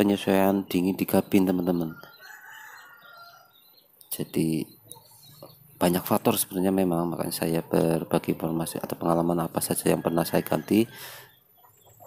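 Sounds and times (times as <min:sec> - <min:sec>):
rooster crowing: 0:01.9 - 0:03.6, 0:09.8 - 0:11.3.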